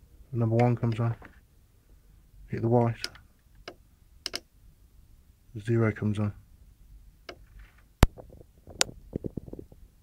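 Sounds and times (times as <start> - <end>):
sharp clicks: 3.0 - 4.5.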